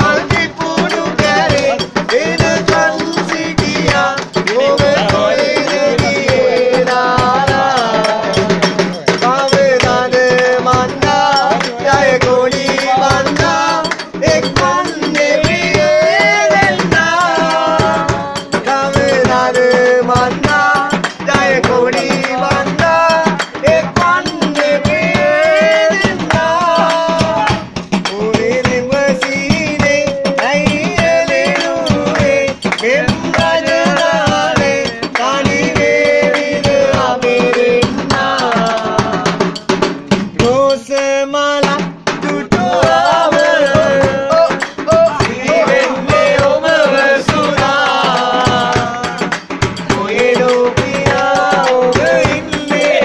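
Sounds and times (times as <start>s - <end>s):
hand drum beaten rhythmically: 0.0s - 53.0s
men singing together: 0.0s - 53.0s.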